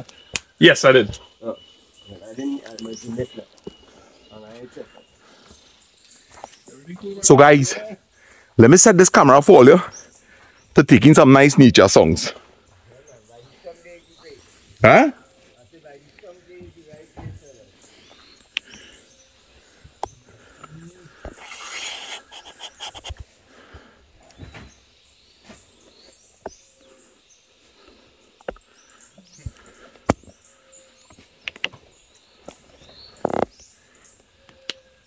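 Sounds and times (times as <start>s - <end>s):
wild birds chirping: 0.0s - 35.0s
sharp clicks and knocks: 31.4s - 31.8s.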